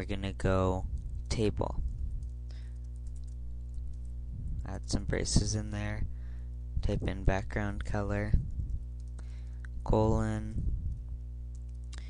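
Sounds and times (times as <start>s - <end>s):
steady low hum: 0.0s - 12.0s
computer keyboard keys clicking: 2.2s - 4.1s, 11.5s - 12.0s.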